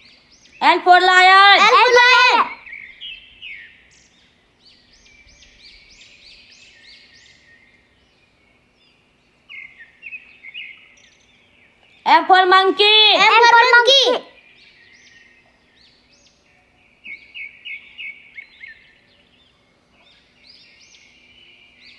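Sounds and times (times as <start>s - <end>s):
faint bird chirps: 0.0s - 21.9s.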